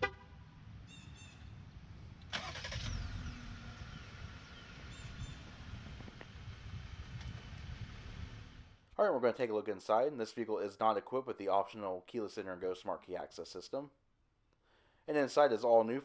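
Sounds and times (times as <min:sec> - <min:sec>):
car horn chirp: 0:00.0 - 0:00.4
car engine cranking and idling: 0:00.0 - 0:08.9.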